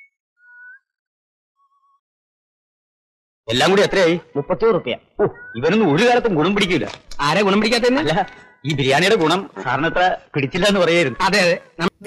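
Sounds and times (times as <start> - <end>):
faint background music: 3.5 - 12.0.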